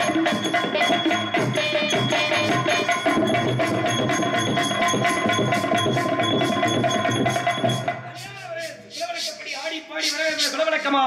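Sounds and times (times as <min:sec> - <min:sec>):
hand drums beating: 0:00.0 - 0:08.8
held melody notes: 0:00.0 - 0:08.9
small cymbals: 0:00.0 - 0:10.6.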